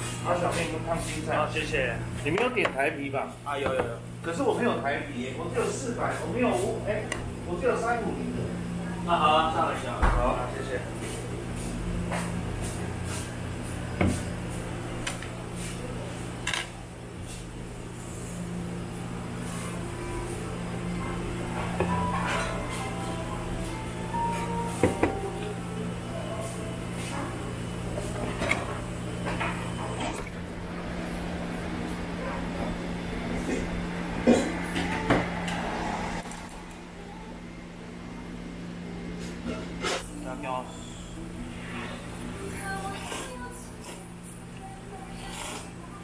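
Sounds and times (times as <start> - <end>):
low background hum: 0.0 - 46.0.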